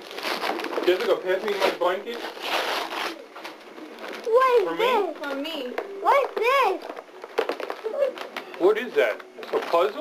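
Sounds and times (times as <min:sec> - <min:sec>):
wrapping paper rustling and tearing: 0:00.0 - 0:05.4, 0:06.8 - 0:10.0.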